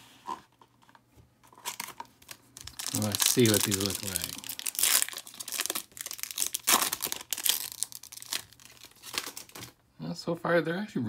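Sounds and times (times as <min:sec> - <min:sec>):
foil wrapper crinkling: 0:01.5 - 0:09.8.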